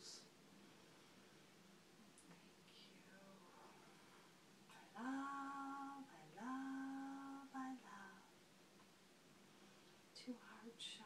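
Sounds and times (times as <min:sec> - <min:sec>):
woman singing long notes: 0:04.7 - 0:08.3.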